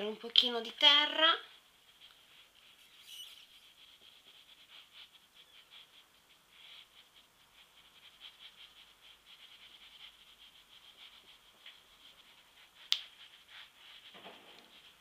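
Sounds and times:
powder brush scratching on skin: 0:00.0 - 0:15.0.

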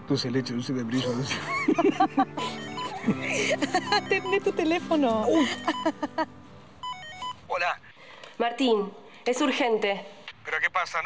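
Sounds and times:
phone ringtone beeping: 0:02.4 - 0:07.5.

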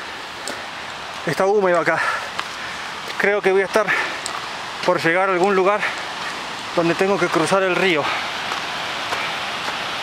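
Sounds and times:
mountain stream rushing: 0:00.0 - 0:10.0
faint footsteps on rocks: 0:00.4 - 0:09.9.

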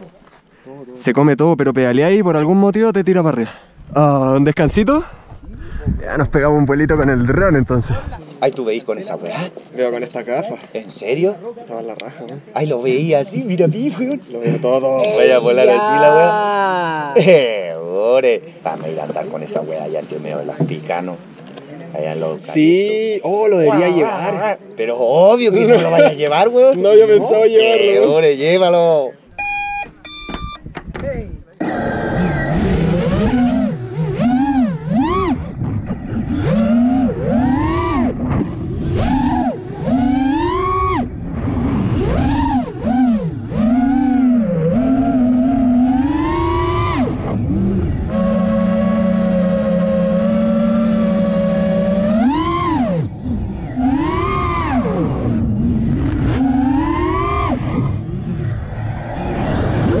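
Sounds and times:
quadcopter motors whining: 0:12.8 - 0:17.3, 0:29.4 - 0:30.6, 0:31.6 - 1:00.0.

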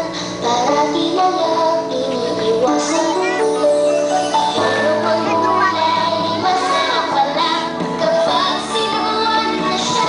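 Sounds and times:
backing music: 0:00.0 - 0:10.0
children singing together: 0:00.6 - 0:10.0.

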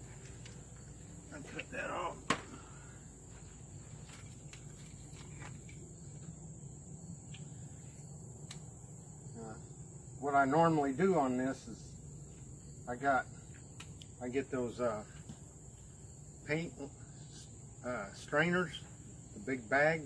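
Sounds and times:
insects chirring: 0:00.0 - 0:20.0.

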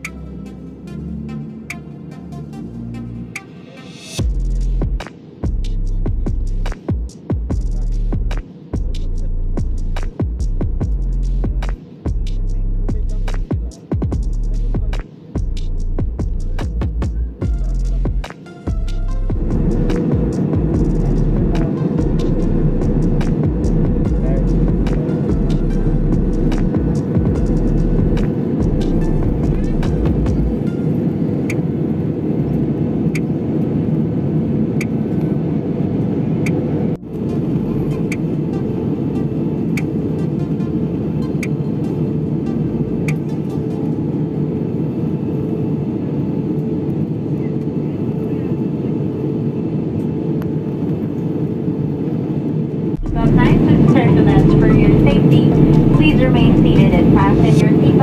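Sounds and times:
jet airliner cabin drone: 0:00.0 - 0:58.0
voices: 0:53.1 - 0:58.0.

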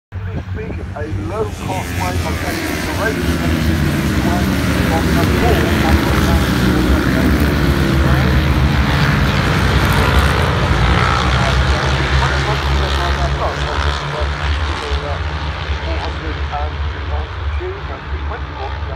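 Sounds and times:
racing motorcycles revving: 0:00.2 - 0:18.9.

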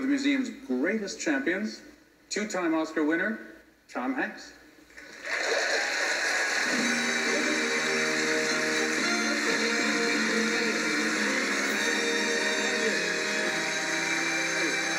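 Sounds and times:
audience applause: 0:05.0 - 0:14.9
walk-on music: 0:06.4 - 0:14.9.

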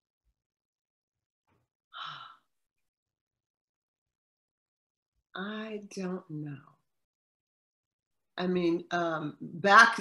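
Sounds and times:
faint breath: 0:02.0 - 0:02.6.

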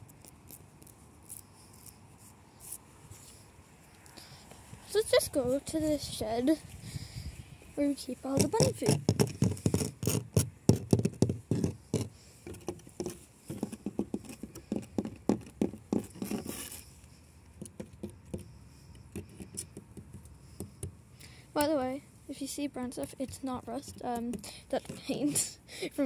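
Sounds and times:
fingers tapping on wooden planks: 0:08.4 - 0:16.5, 0:17.6 - 0:21.0.

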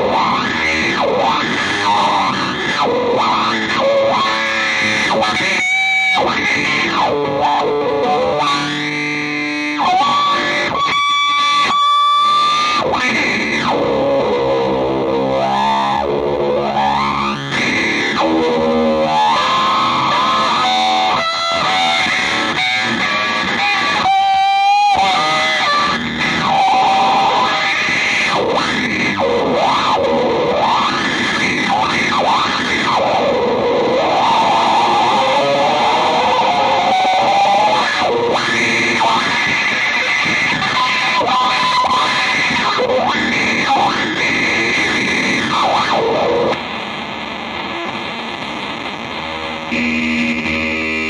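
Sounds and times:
noisy electric guitar: 0:00.0 - 0:51.0.

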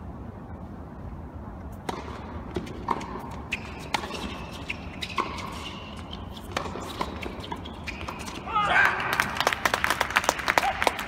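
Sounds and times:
small crowd applauding: 0:08.8 - 0:11.0.

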